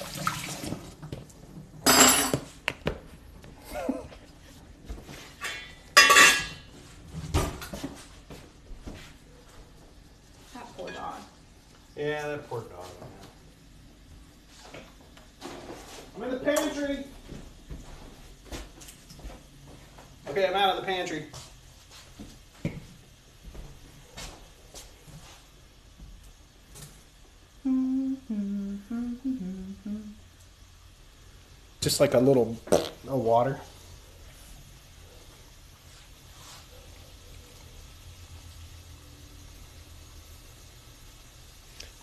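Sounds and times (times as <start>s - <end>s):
faint kitchen cooking sounds: 0.0s - 42.0s
person humming a tune: 27.6s - 30.3s.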